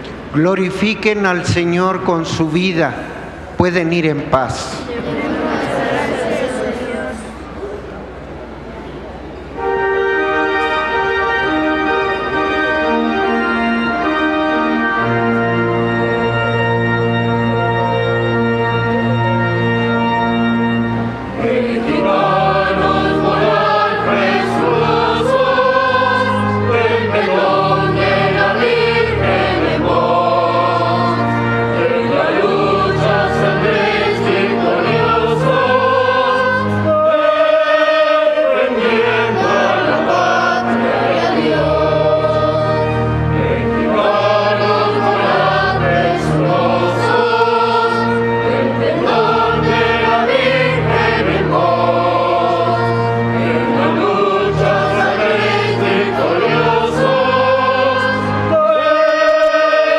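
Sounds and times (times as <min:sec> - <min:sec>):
choir singing a hymn: 0:00.0 - 0:08.6, 0:09.4 - 0:59.9
organ bass notes: 0:07.4 - 0:59.9.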